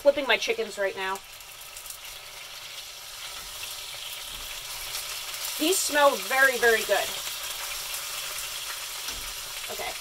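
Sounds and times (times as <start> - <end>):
chicken sizzling in a pan: 0.0 - 10.0.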